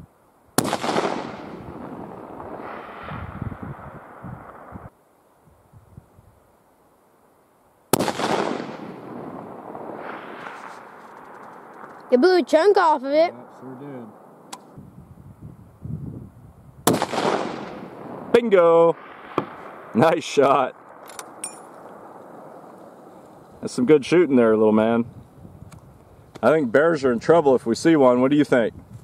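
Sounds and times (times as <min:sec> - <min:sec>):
wind hiss: 0:00.0 - 0:29.0
rifle shot with rolling echo: 0:00.6 - 0:04.9, 0:07.9 - 0:12.7, 0:16.8 - 0:23.8
rifle bolt metal clicks: 0:20.9 - 0:21.8.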